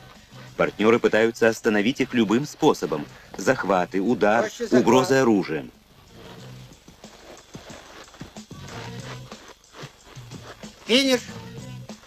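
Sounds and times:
film music with low held notes: 0:00.0 - 0:12.0.

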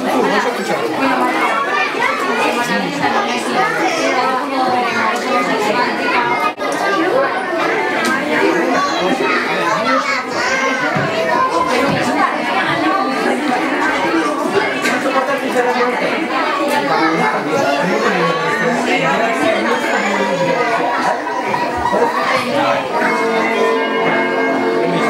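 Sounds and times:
children and adults talking: 0:00.0 - 0:25.0.

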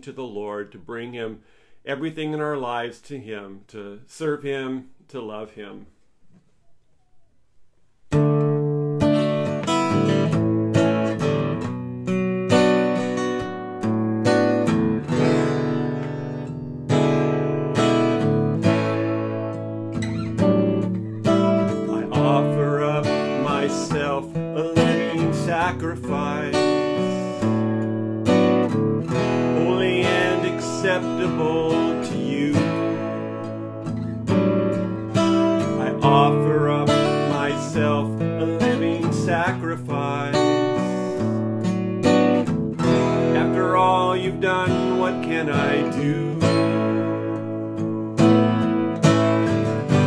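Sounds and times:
acoustic guitar strumming chords: 0:08.1 - 0:50.0
man singing: 0:21.4 - 0:27.6, 0:29.2 - 0:33.9, 0:35.6 - 0:41.3, 0:43.2 - 0:47.7.

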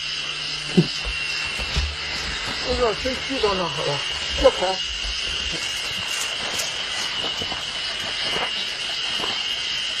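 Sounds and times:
insects buzzing: 0:00.0 - 0:10.0
footsteps on dirt trail: 0:00.7 - 0:09.6.

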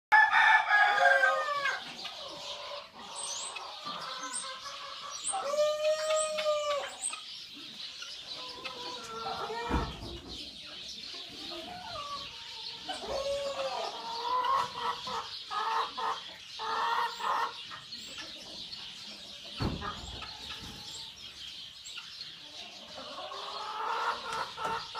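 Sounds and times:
rooster crowing: 0:00.1 - 0:01.8
chickens clucking: 0:00.1 - 0:24.9
small birds chirping: 0:00.9 - 0:24.9.

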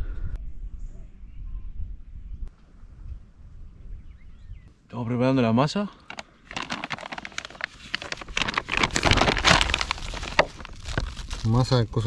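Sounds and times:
plastic bag crinkling: 0:06.1 - 0:11.8.

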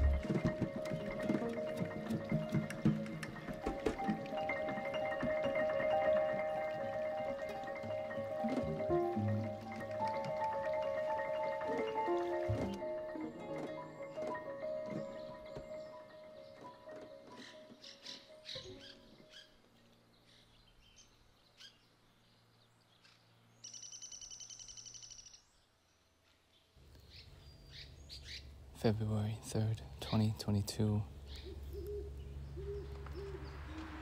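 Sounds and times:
marimba-like music: 0:00.0 - 0:19.0
low outdoor background: 0:00.0 - 0:34.0
bird chirps: 0:14.0 - 0:25.7, 0:26.5 - 0:28.5, 0:31.2 - 0:34.0.

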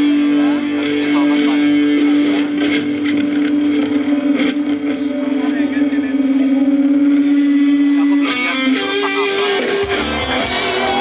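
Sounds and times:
rock band droning note: 0:00.0 - 0:11.0.

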